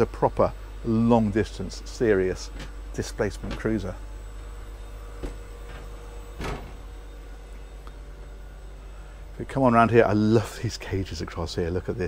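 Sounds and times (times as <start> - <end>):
engine room equipment hum: 0.0 - 12.0
faint high whine: 0.0 - 12.0.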